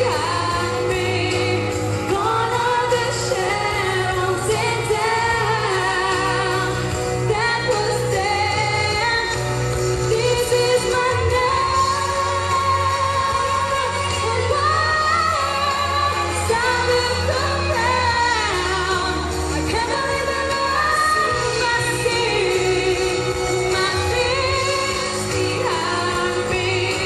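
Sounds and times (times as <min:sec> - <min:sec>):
woman singing pop ballad: 0:00.0 - 0:27.0.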